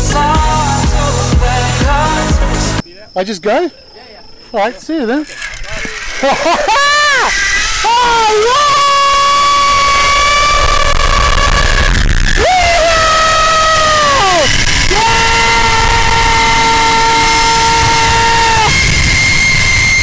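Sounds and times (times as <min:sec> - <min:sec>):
man screaming: 0:06.6 - 0:18.8
wind rushing over microphone: 0:09.8 - 0:20.0.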